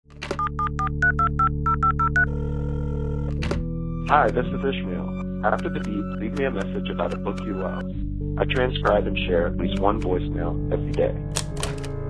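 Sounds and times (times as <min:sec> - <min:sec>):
telephone line clicking: 0:00.2 - 0:04.5, 0:05.1 - 0:07.8
touch-tone keypad beeps: 0:00.4 - 0:02.3
steady telephone tone: 0:00.4 - 0:03.3.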